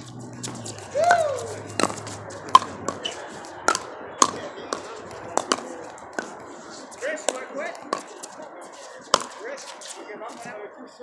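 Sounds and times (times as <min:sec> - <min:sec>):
paddle striking plastic ball: 0:01.8 - 0:06.4, 0:07.3 - 0:08.2, 0:09.1 - 0:09.4.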